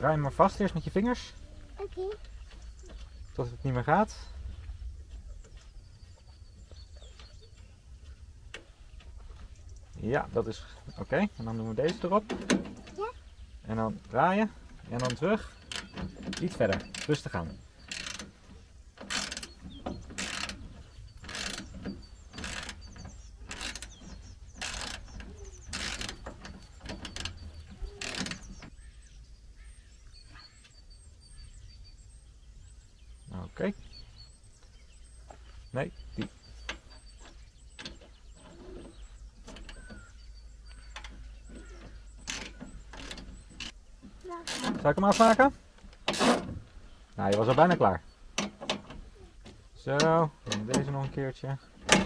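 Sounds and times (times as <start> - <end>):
faint bird chirps: 0.0 - 12.2, 12.8 - 45.4.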